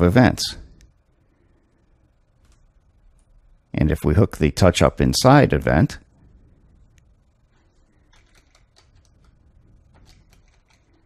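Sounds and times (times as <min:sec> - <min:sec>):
keyboard typing: 0:07.8 - 0:11.0.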